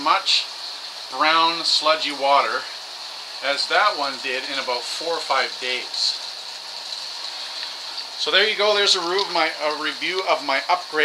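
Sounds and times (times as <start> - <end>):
water pumps running: 0.0 - 11.0.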